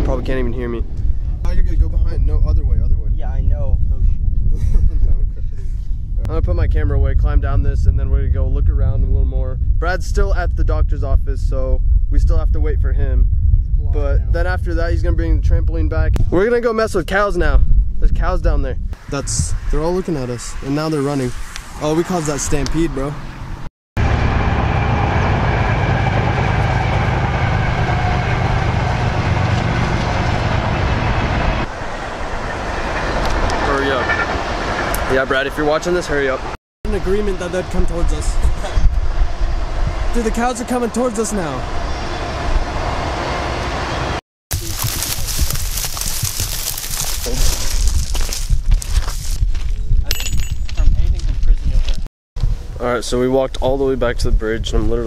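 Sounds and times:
wind buffeting microphone: 0.0 - 43.9, 44.5 - 55.0
freight train rumbling past: 23.2 - 44.2.

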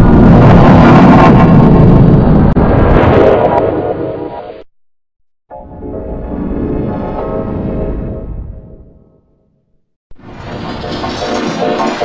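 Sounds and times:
distorted rumbling soundtrack: 0.0 - 4.7, 5.5 - 12.0.

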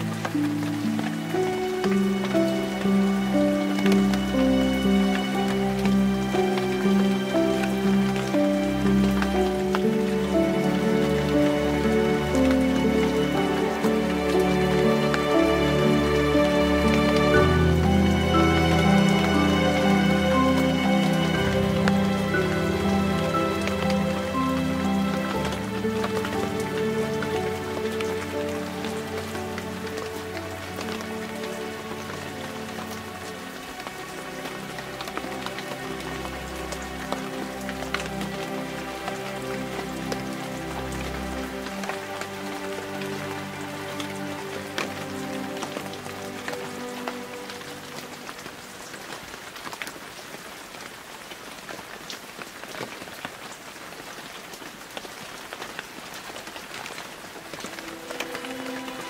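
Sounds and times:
ambient music of held chords: 0.0 - 49.8, 56.9 - 59.0
steady rain: 0.0 - 59.0.

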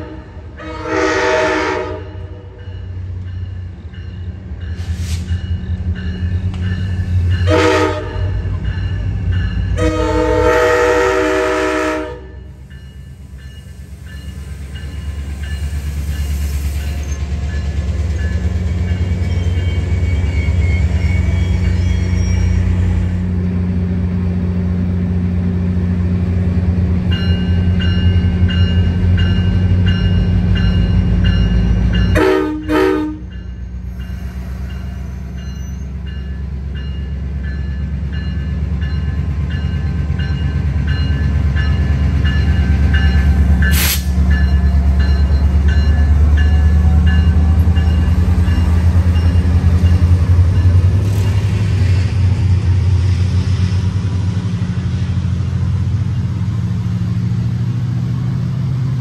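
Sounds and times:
diesel locomotive rumble: 0.0 - 59.0.

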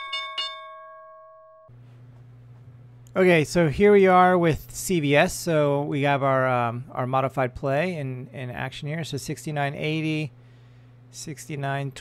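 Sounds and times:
bell-like chime struck rapidly: 0.0 - 1.6
faint hum and hiss: 1.7 - 12.0.

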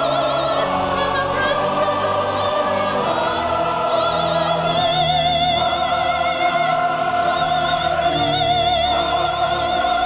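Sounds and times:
choir singing gospel: 0.0 - 10.0.

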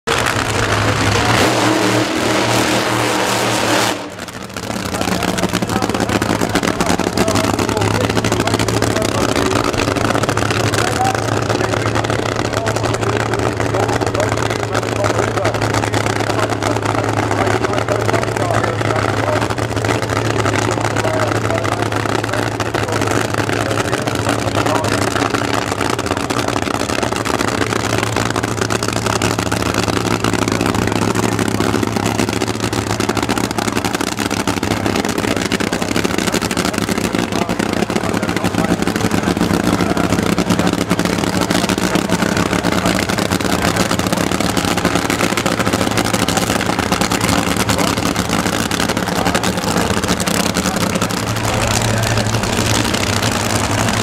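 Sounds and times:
drag car engine idling: 0.0 - 54.0.

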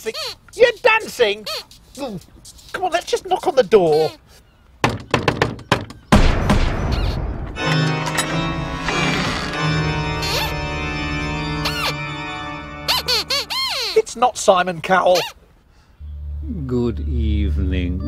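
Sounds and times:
puppet's squeaky voice: 0.0 - 4.3, 6.9 - 7.2, 10.2 - 10.6, 11.6 - 12.0, 12.9 - 14.4, 15.0 - 15.4
knocking on wooden door: 4.8 - 6.1
loud crash: 6.1 - 7.6
eerie music chord: 7.6 - 12.9, 16.0 - 18.0.

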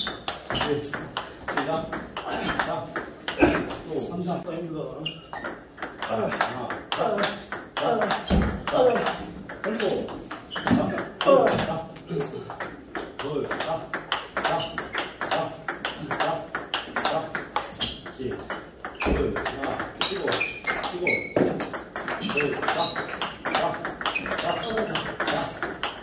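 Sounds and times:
paddles striking balls: 0.0 - 4.2, 5.2 - 26.0
ping-pong balls bouncing on table: 0.0 - 4.4, 5.0 - 26.0.

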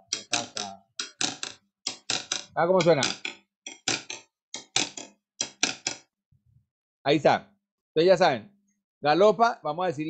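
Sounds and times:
sharp percussive strikes: 0.0 - 6.0.

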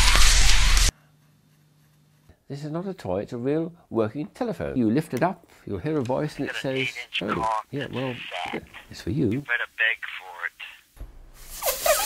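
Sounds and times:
person speaking: 5.8 - 10.8.

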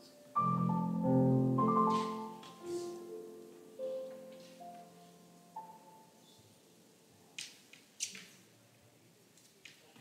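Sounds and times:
grand piano note: 0.4 - 3.3.

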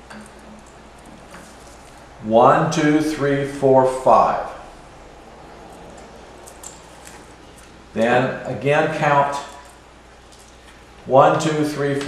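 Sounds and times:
wire rustling on pegs: 0.0 - 2.2, 5.6 - 8.2, 9.4 - 11.0
faint steady hum: 0.0 - 12.0.

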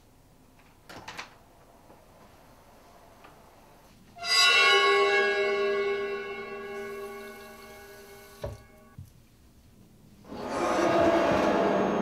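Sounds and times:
bell-like chime ringing: 4.2 - 9.0.

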